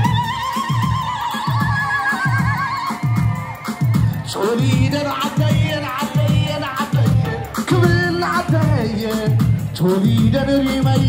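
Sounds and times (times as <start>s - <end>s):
steady drum beat: 0.0s - 11.0s.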